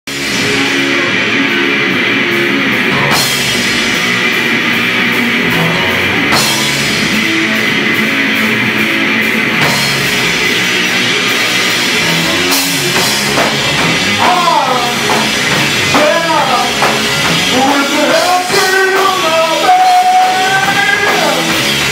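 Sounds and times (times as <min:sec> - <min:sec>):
live rock band playing: 0:00.1 - 0:21.9.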